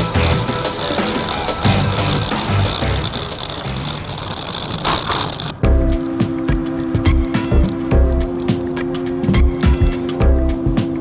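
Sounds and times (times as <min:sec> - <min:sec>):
music with heavy beat: 0:00.0 - 0:03.8, 0:05.6 - 0:11.0.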